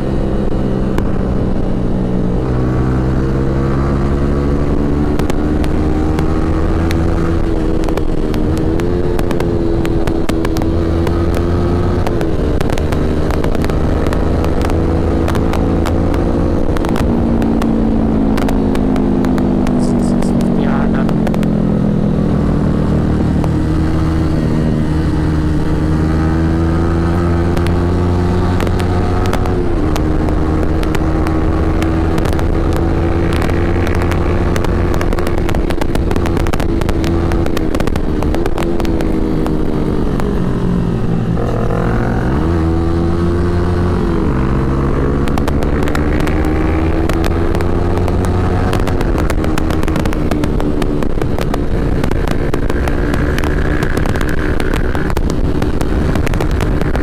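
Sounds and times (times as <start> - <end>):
motorcycle engine running: 0.0 - 57.0
wind on microphone: 0.0 - 57.0.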